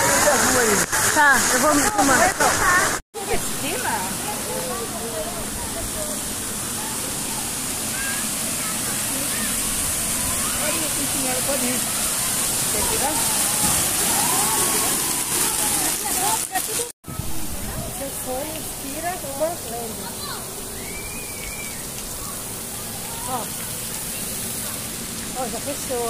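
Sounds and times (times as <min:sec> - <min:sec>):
water splashing from spouts: 0:00.0 - 0:26.0.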